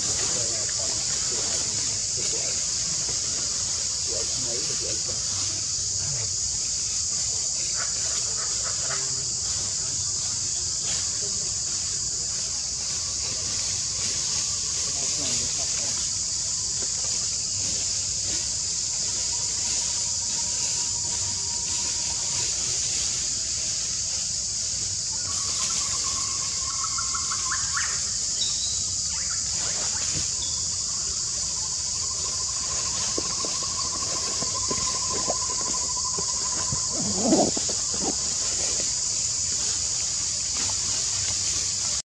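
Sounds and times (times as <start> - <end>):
forest ambience hiss: 0.0 - 42.0
thin whistled calls and trills: 25.2 - 37.0.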